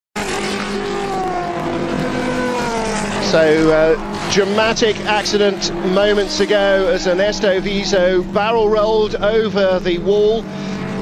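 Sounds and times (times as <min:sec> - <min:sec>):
race car engines at high revs: 0:00.2 - 0:11.0.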